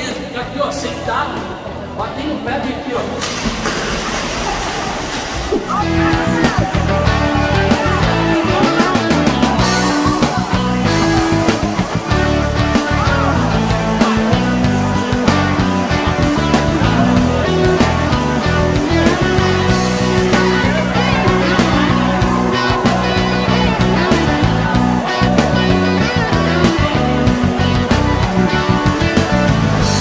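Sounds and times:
background music with bass line: 0:05.7 - 0:30.0.

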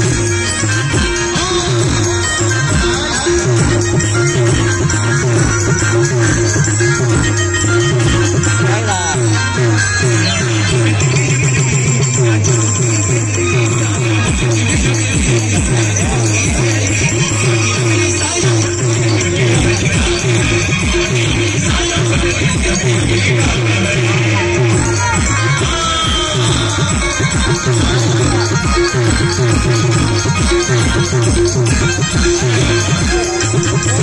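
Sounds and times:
dance music from a band: 0:00.0 - 0:34.0.

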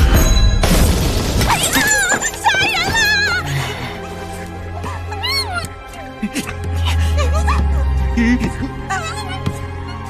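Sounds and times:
background music with low bass: 0:03.8 - 0:10.0.

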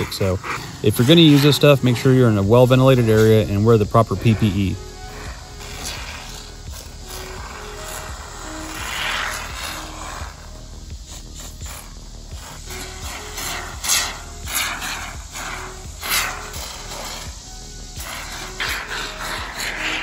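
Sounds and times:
background music melody: 0:00.0 - 0:20.0
spray foam hissing and sputtering: 0:00.0 - 0:20.0.

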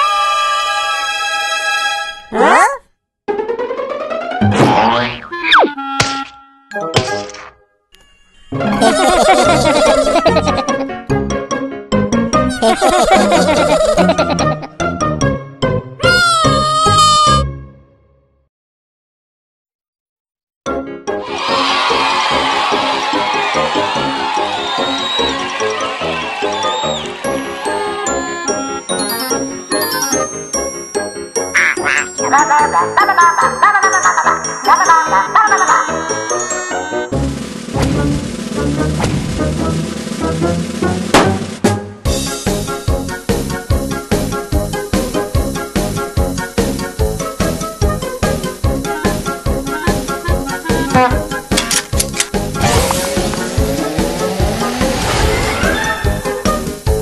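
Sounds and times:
background music: 0:03.3 - 0:18.2, 0:20.7 - 0:57.0
cartoon thump: 0:04.4 - 0:06.4, 0:39.0 - 0:39.4, 0:41.1 - 0:41.8
descending whistle glide: 0:24.5 - 0:25.5, 0:26.4 - 0:27.1
cartoon duck quacking: 0:31.6 - 0:32.8, 0:49.0 - 0:51.3.

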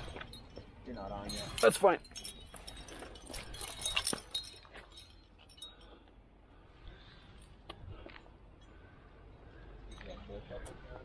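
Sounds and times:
climbing gear clinking: 0:00.0 - 0:06.3.

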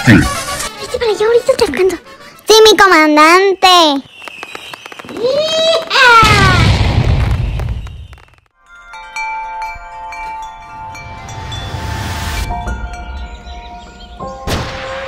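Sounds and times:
firework falling whistle: 0:04.0 - 0:05.6, 0:06.2 - 0:08.4
wind-chime music: 0:08.6 - 0:14.5.

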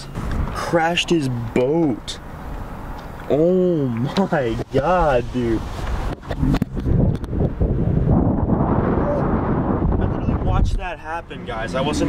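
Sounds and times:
road and wind noise in car: 0:00.0 - 0:12.0.

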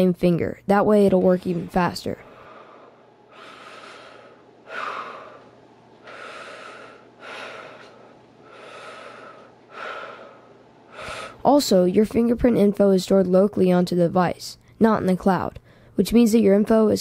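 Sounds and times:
person breathing close to microphone: 0:02.2 - 0:11.4, 0:15.6 - 0:16.0.

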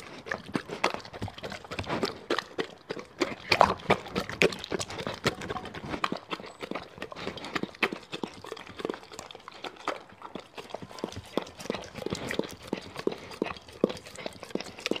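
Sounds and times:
dog licking a plate: 0:00.0 - 0:15.0.

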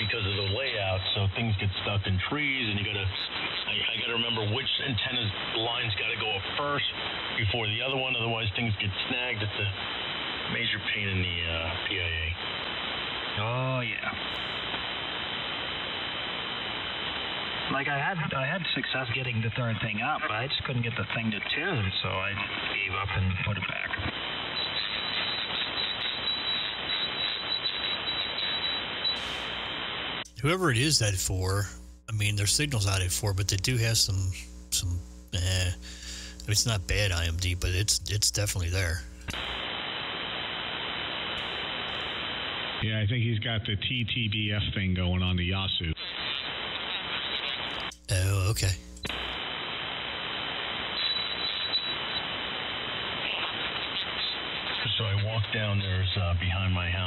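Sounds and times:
radio static hiss: 0:00.0 - 0:42.9, 0:45.7 - 0:57.0.

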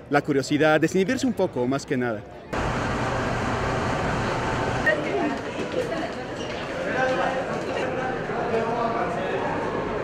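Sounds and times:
metro train running noise: 0:02.6 - 0:05.0.

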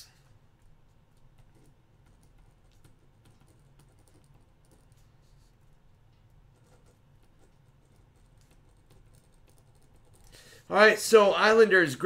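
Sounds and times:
faint keyboard typing: 0:00.0 - 0:10.7.

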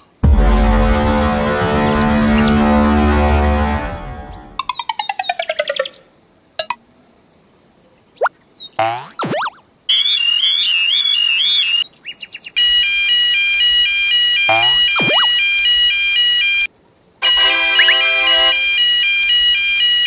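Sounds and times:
two-tone alarm: 0:12.6 - 0:20.0
warbling alarm: 0:13.4 - 0:16.7
sliding-pitch cartoon sound effects: 0:14.5 - 0:15.3, 0:17.3 - 0:18.6
buzzy alarm tone: 0:14.5 - 0:15.4.

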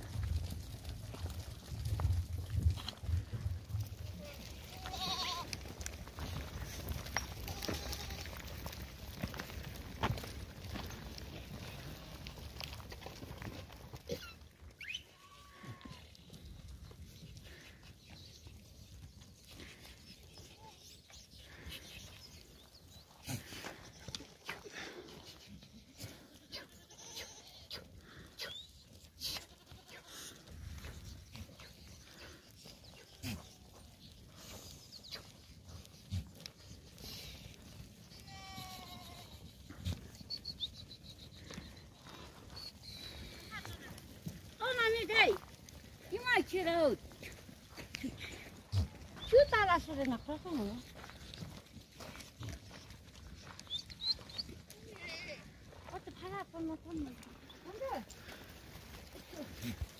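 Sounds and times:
goat or sheep bleating: 0:04.0 - 0:05.8, 0:07.2 - 0:08.8, 0:14.0 - 0:16.3, 0:25.9 - 0:27.8, 0:29.2 - 0:30.6, 0:38.2 - 0:40.1, 0:54.7 - 0:55.6.

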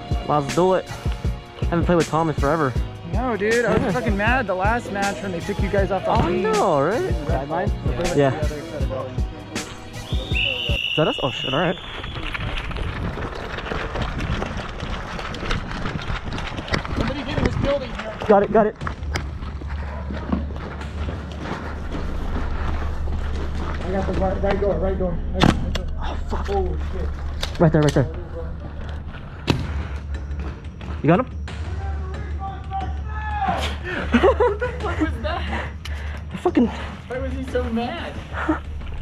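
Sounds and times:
footsteps running on dirt: 0:10.1 - 0:24.3
steady low rumble: 0:11.4 - 0:32.4, 0:37.0 - 0:39.0
gear rattling: 0:12.0 - 0:19.6.

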